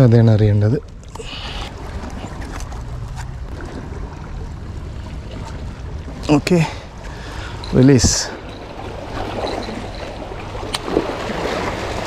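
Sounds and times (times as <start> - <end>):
small waves washing against rocks: 8.0 - 12.0.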